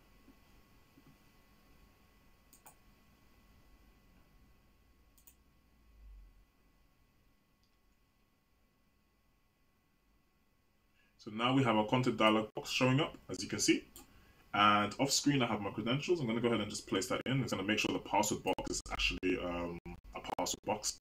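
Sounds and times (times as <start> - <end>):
faint computer clicks: 2.5 - 2.8, 5.1 - 5.4.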